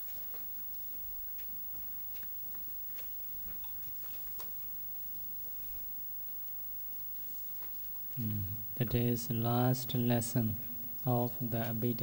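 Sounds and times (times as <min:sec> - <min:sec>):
steady hiss: 0:07.2 - 0:12.0.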